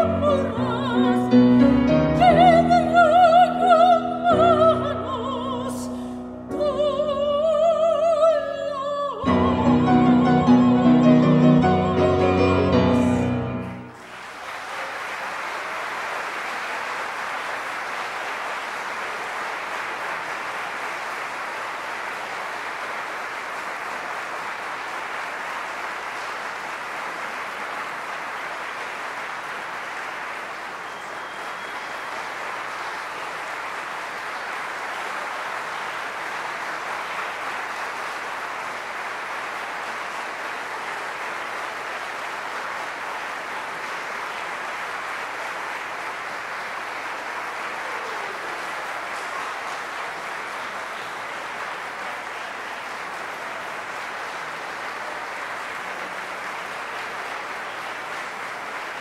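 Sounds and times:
audience applauding: 0.0 - 1.6, 2.2 - 59.0.

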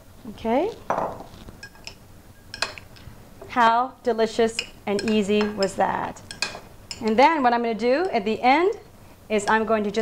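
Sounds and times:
metal spoon clinking on glass bowl: 1.6 - 2.8, 4.5 - 7.4.

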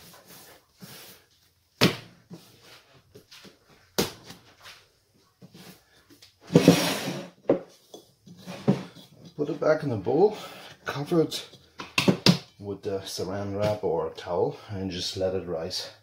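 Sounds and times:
dough scraping into glass bowl: 6.5 - 7.3.

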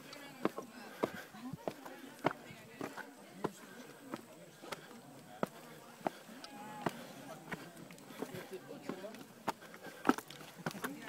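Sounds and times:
faint voices: 0.0 - 11.0
footsteps on stone steps: 0.0 - 11.0.

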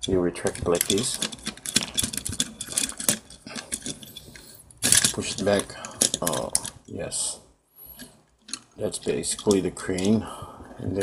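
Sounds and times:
toy crane boom clicking and rattling: 0.0 - 6.9, 8.0 - 10.2.

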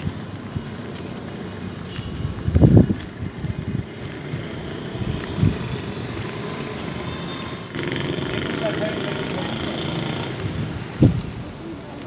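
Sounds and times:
vehicle and road noise: 0.0 - 12.0.

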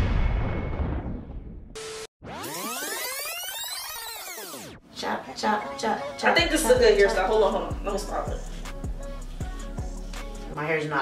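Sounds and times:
synthesized tones sweeping in pitch: 2.2 - 4.8.

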